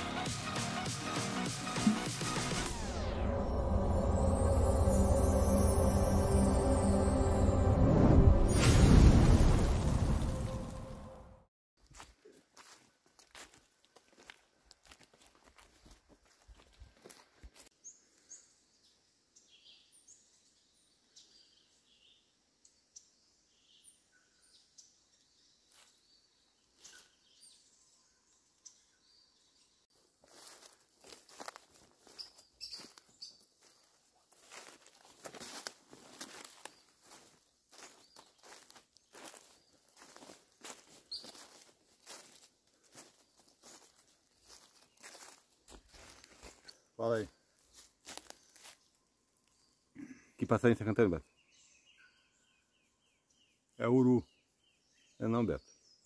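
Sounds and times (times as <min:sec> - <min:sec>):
footsteps crunching dry leaves: 0:11.8 - 0:17.7, 0:29.9 - 0:49.0
high bird chirps: 0:32.1 - 0:33.4, 0:41.1 - 0:41.5.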